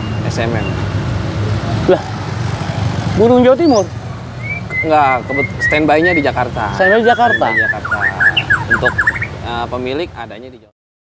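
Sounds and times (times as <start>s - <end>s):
road traffic rumble: 0.0s - 10.7s.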